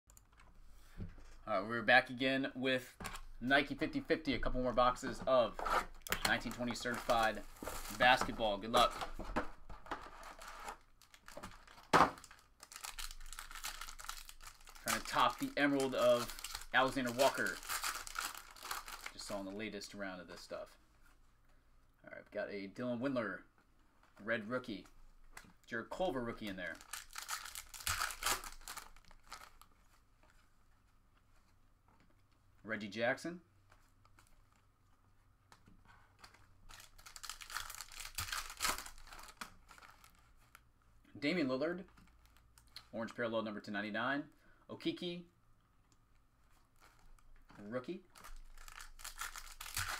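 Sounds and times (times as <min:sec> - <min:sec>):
foil wrappers crinkling and tearing: 0:06.1 - 0:08.9, 0:10.0 - 0:19.4, 0:26.6 - 0:29.6, 0:36.2 - 0:40.6, 0:48.1 - 0:49.9.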